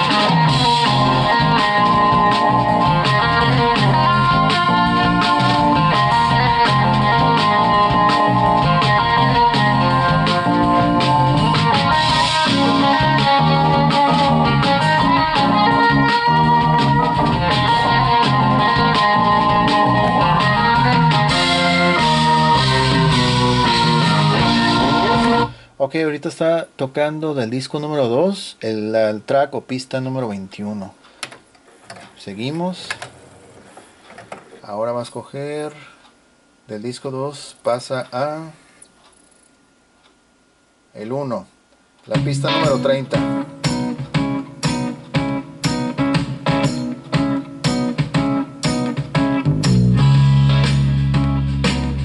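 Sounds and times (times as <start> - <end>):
recorded song with steady beat: 0.0 - 25.8, 37.8 - 52.0.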